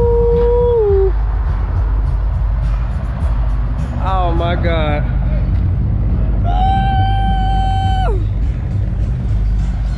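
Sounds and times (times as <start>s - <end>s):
low rumble: 0.0s - 9.9s.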